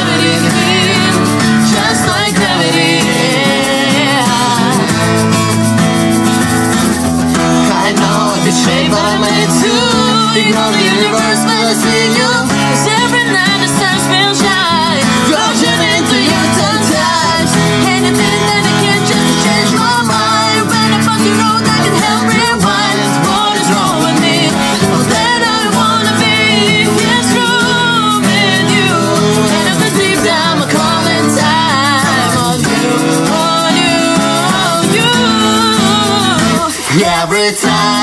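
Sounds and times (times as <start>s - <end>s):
acoustic guitar strumming: 0.0s - 38.0s
hand shaker: 0.0s - 38.0s
voices singing: 0.0s - 38.0s.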